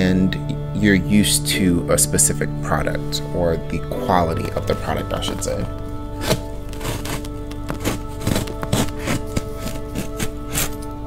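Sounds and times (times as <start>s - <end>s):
background music: 0.0s - 11.0s
scissors snipping cardboard: 6.2s - 10.9s.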